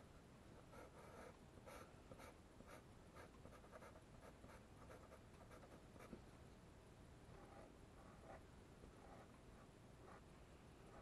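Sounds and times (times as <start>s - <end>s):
pencil scratching on paper: 0.7s - 6.1s, 7.4s - 8.4s, 9.0s - 10.2s.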